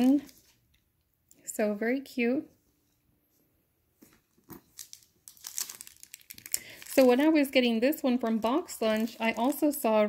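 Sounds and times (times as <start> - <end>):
bags rustling and crinkling: 0.0 - 0.6, 4.3 - 10.0.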